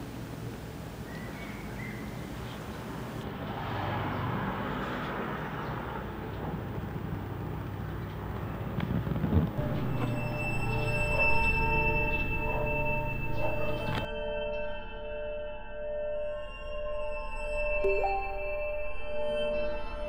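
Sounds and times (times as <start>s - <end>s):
low rumbling drone: 8.2s - 15.0s
sustained high ringing tones: 9.6s - 20.0s.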